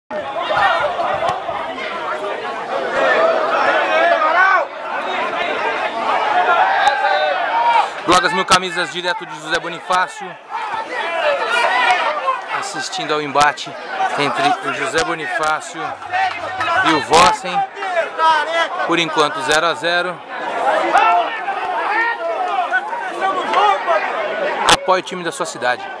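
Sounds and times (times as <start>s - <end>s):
people chattering: 0.1s - 26.0s.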